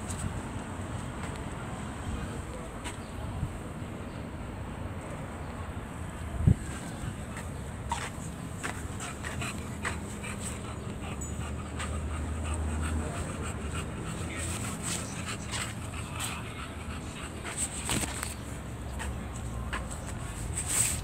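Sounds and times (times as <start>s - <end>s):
dog breathing: 6.5s - 20.4s.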